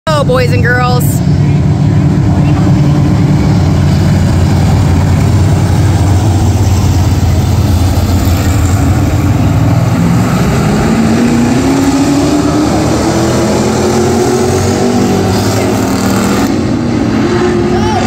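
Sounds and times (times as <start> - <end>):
race car engines droning: 0.0 - 18.0.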